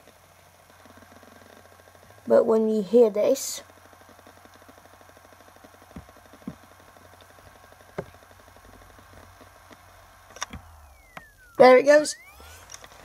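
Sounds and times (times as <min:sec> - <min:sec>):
hard drive clicks: 0:00.0 - 0:02.3, 0:03.2 - 0:13.0
hard drive humming: 0:00.0 - 0:13.0.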